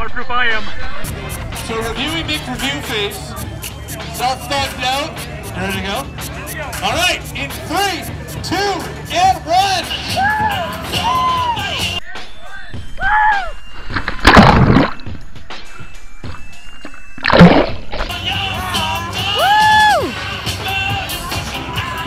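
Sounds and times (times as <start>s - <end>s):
background music: 1.0s - 22.0s
water splashing: 13.8s - 15.2s, 16.4s - 18.2s.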